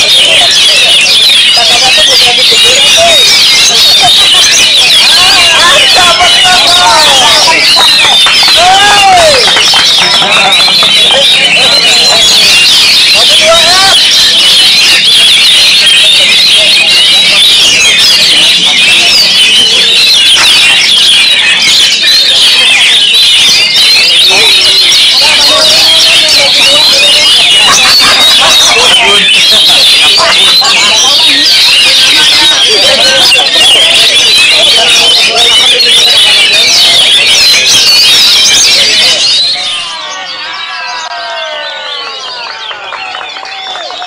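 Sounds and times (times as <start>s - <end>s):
magpie-robin song: 0.0s - 43.4s
other songbirds: 0.0s - 43.4s.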